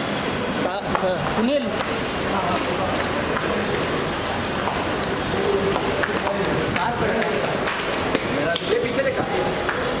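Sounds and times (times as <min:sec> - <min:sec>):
indistinct voices talking: 0:00.3 - 0:10.0.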